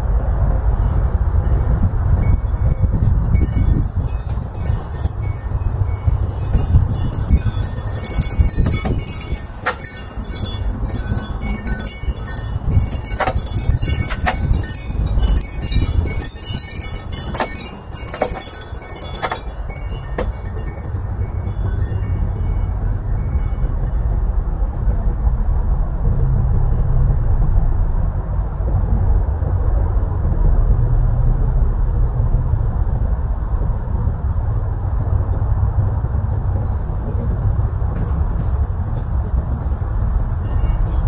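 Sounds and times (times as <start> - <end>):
wind rumble on microphone: 0.0 - 41.0
wind chimes tinkling: 0.6 - 25.2, 37.3 - 41.0
sharp chime clinks: 1.5 - 23.9, 39.7 - 41.0.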